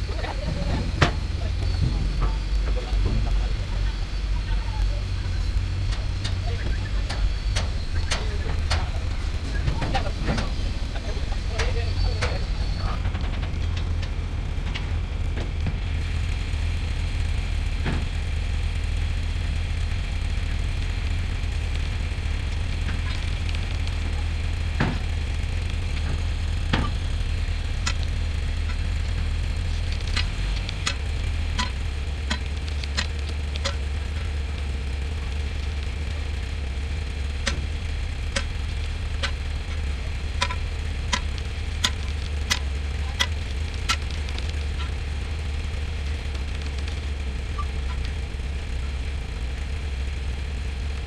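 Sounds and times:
winch engine drone: 0:00.0 - 0:51.0
sharp clicks and ticks: 0:05.5 - 0:09.0, 0:18.9 - 0:51.0.

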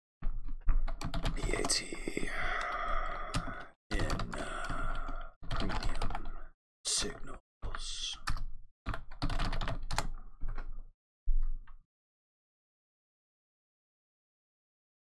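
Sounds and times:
keyboard typing clicks: 0:02.6 - 0:06.4, 0:08.3 - 0:10.8.

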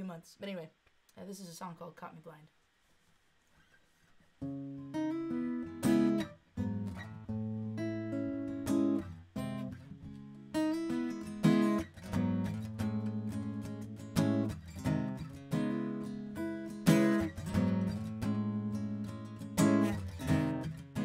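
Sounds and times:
acoustic guitar strumming chords: 0:04.4 - 0:21.0.

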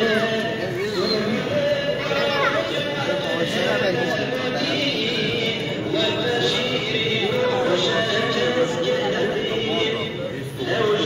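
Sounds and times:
man chanting: 0:00.0 - 0:11.0
voices talking: 0:00.0 - 0:11.0.

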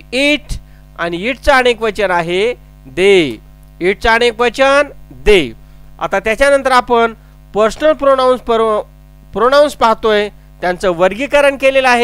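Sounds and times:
low electrical hum: 0:00.0 - 0:12.0
person speaking: 0:00.0 - 0:12.0.

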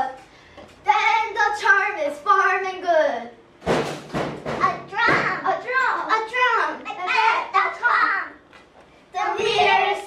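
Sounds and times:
children chanting: 0:09.2 - 0:10.0.

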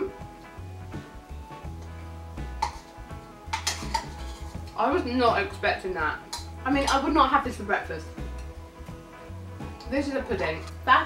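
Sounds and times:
background music with bass line: 0:00.0 - 0:11.0
metal spoon clinking on ceramic bowl: 0:03.5 - 0:04.8.

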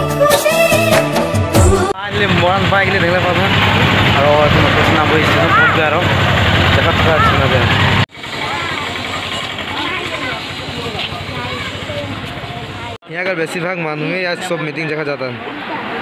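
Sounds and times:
man talking: 0:02.0 - 0:07.9
auto-rickshaw engine idling: 0:02.0 - 0:13.0
faint voices: 0:06.7 - 0:16.0.

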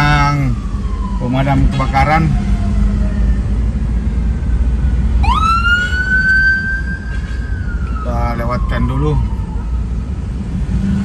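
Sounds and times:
emergency vehicle siren wailing: 0:00.0 - 0:11.0
engine and road traffic rumble: 0:00.0 - 0:11.0.

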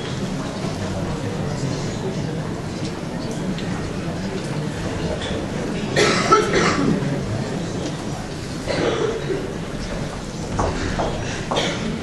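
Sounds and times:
low room murmur: 0:00.0 - 0:12.0.

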